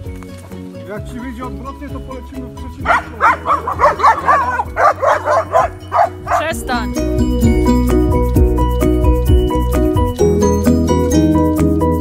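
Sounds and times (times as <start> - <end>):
background music with steady beat: 0.0 - 12.0
dog barking: 2.8 - 6.6.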